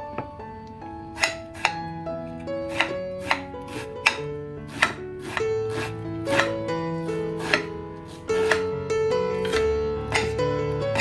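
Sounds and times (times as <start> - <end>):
soft background music: 0.0 - 11.0
knife chopping onion on plate: 1.2 - 1.8, 2.7 - 6.6, 7.4 - 8.7, 9.4 - 11.0.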